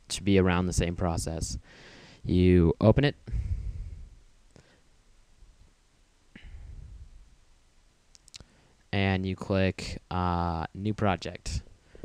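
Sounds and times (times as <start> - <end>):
man speaking: 0.0 - 1.6, 2.3 - 3.2, 9.0 - 11.6
faint sharp clicks: 8.1 - 8.5.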